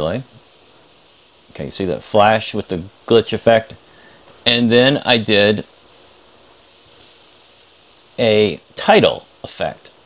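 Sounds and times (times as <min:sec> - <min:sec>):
microphone hiss: 0:00.0 - 0:10.0
person speaking: 0:01.5 - 0:05.7, 0:08.2 - 0:10.0.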